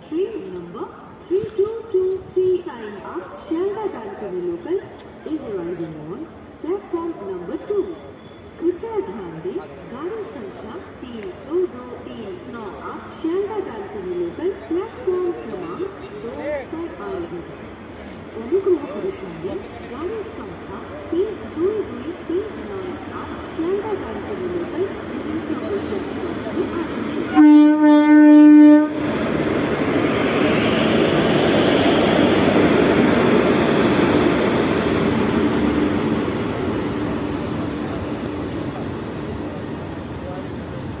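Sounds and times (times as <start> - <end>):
train rolling past: 0.4 - 41.0
train horn blast: 27.3 - 29.1.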